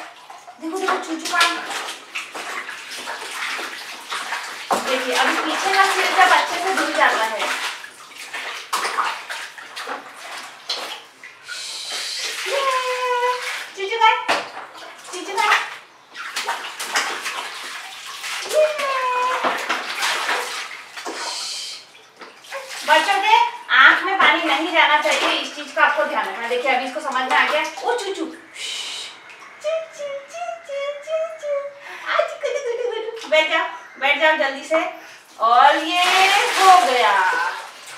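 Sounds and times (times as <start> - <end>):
water pouring and splashing: 0.0 - 28.6, 35.2 - 37.9
woman's voice: 0.6 - 1.8, 4.8 - 7.6, 12.0 - 14.3, 15.1 - 15.7, 18.5 - 19.6, 22.8 - 37.7
toddler's voice: 29.6 - 31.8.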